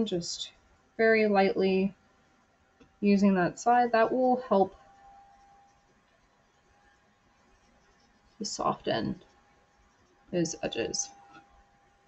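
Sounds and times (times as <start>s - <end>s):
faint steady tone: 0.0s - 12.0s.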